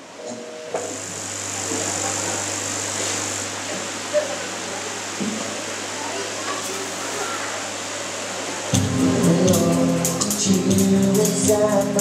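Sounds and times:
electrical hum from sound system: 0.0s - 12.0s
noisy rush: 1.0s - 12.0s.

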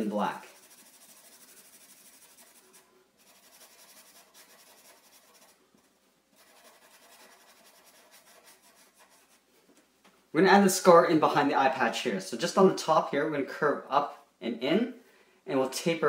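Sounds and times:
marker scribbling on paper: 0.0s - 9.4s.

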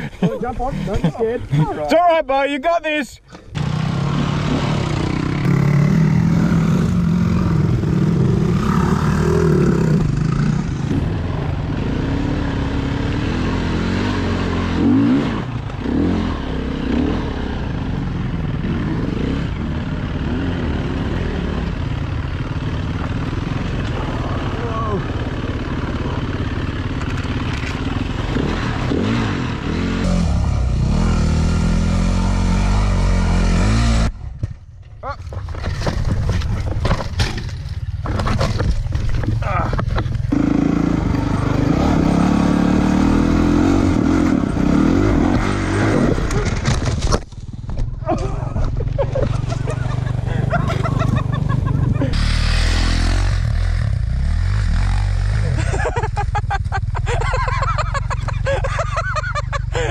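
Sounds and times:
dirt bike engine revving: 3.5s - 34.2s, 40.3s - 46.8s, 49.0s - 56.2s
bike jolt: 34.3s - 40.3s, 46.0s - 52.9s.

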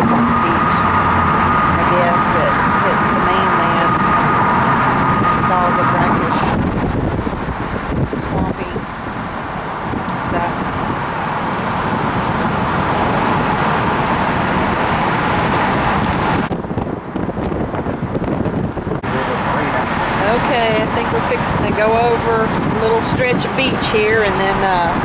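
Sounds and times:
wind and road noise: 0.0s - 25.0s
wind buffeting microphone: 0.0s - 25.0s.

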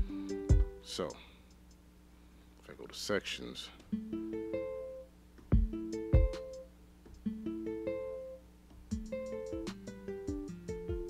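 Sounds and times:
heavy kick drum hits: 5.5s - 6.4s.

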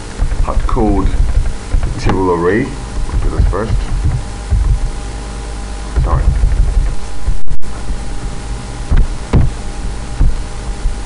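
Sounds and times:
faint steady hum: 0.0s - 11.0s
microphone hiss and rumble: 0.0s - 11.0s.

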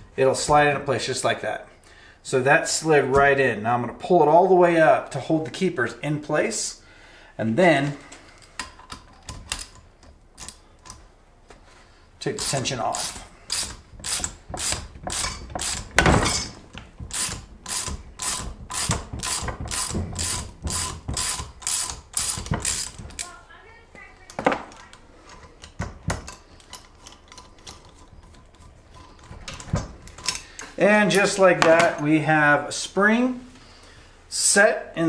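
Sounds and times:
ratchet clicking: 12.4s - 16.0s, 17.1s - 23.3s
knocks: 18.5s - 21.3s.

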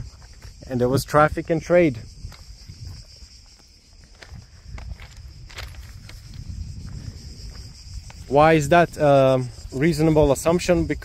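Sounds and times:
insects chirring: 0.0s - 11.0s
wind on microphone: 0.0s - 11.0s.

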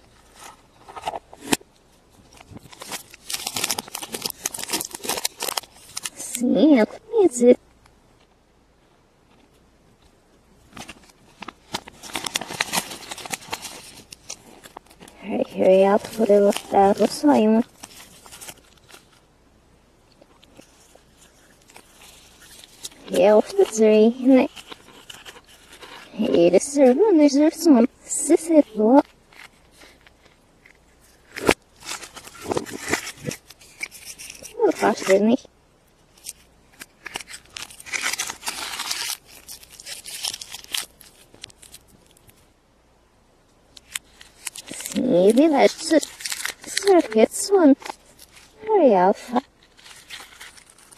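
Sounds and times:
plastic toy and wrapper handled: 0.0s - 7.6s, 10.6s - 19.3s, 20.1s - 42.5s, 43.7s - 50.9s.

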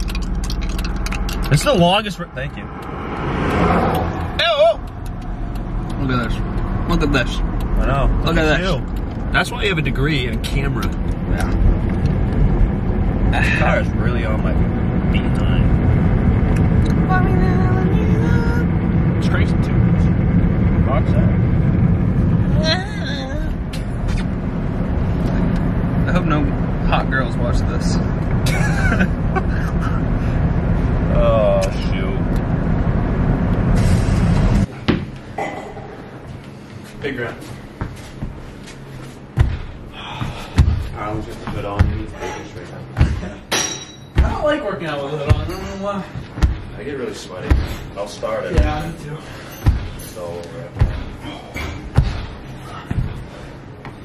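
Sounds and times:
engine and road rumble: 0.0s - 54.0s
thuds: 39.3s - 42.2s, 42.9s - 43.4s, 46.3s - 46.8s, 49.6s - 50.1s, 50.7s - 54.0s
high clink: 43.5s - 44.2s.

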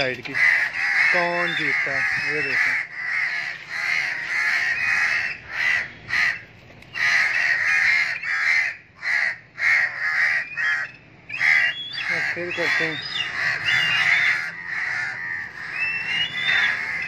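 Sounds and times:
crows cawing: 0.0s - 17.0s.

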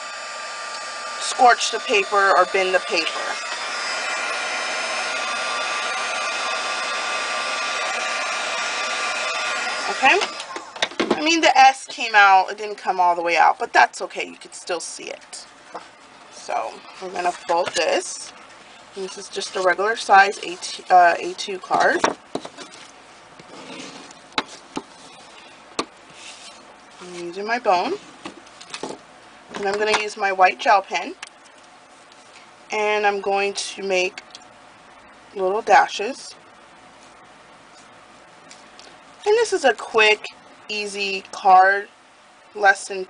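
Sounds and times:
heat tool whirring: 0.0s - 13.1s, 13.9s - 29.0s.

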